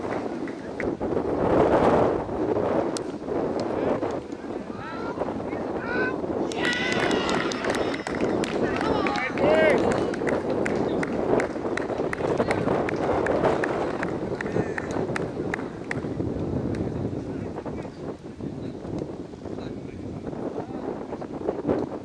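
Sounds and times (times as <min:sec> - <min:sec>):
steady noisy background: 0:00.0 - 0:22.0
players calling and shouting: 0:04.4 - 0:11.0.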